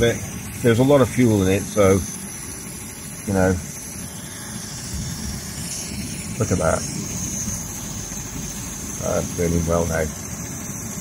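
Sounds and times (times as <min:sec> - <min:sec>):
camping stove hissing: 0:00.0 - 0:11.0.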